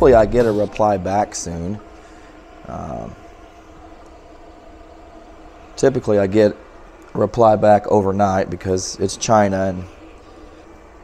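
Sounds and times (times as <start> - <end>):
cooling fan humming: 0.0 - 11.0.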